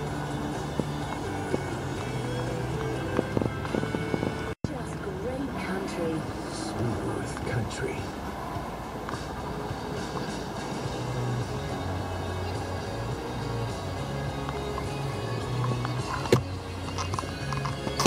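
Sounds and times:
background music with held bass: 0.0s - 4.8s, 9.0s - 18.0s.

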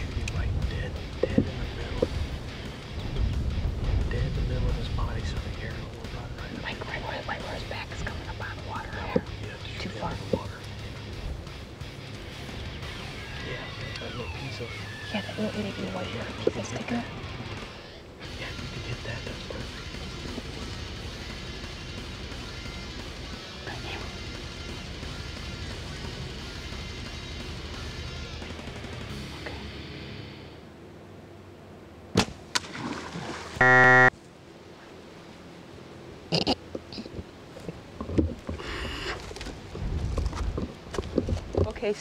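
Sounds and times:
background music: 0.0s - 30.6s
bow shot snap: 32.1s - 33.0s
loud buzzing tone: 33.6s - 34.1s.

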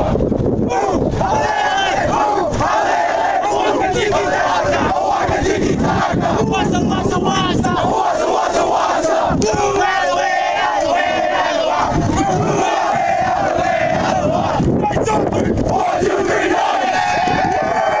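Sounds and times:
players shouting a chant: 0.0s - 18.0s.

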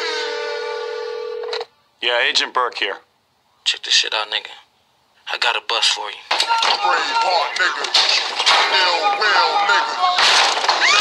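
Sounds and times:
electronic telephone tone: 0.0s - 1.7s.

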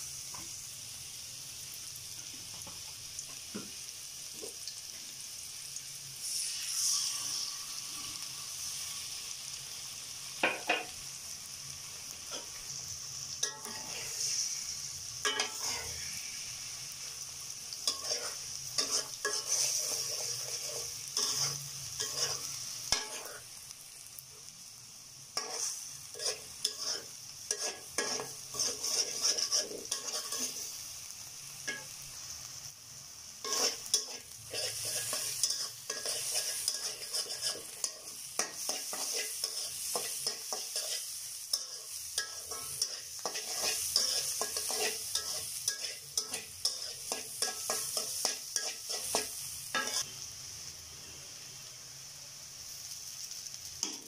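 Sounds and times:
egg sizzling in hot oil: 0.0s - 54.0s
metal spatula scraping a wok: 13.4s - 17.0s, 17.8s - 23.5s, 25.4s - 30.8s, 33.4s - 50.1s.

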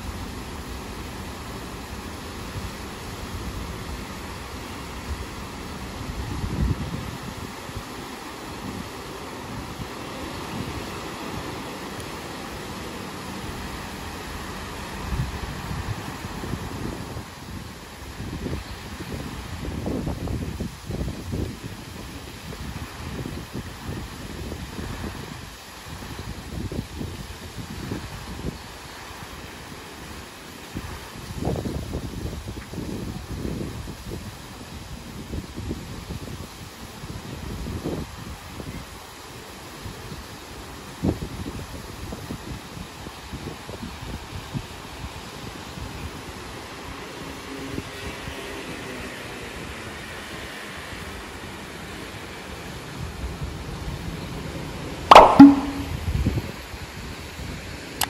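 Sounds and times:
fountain jets spraying: 0.0s - 55.4s
wind buffeting microphone: 4.8s - 11.6s, 13.4s - 28.8s, 30.8s - 38.9s
sudden sharp sound: 55.1s - 56.0s.

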